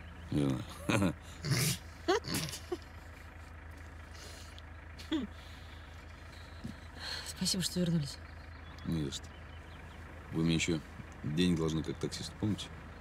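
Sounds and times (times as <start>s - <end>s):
car engine hum: 0.0s - 13.0s
man and woman chuckling: 0.6s - 3.2s, 5.0s - 5.4s.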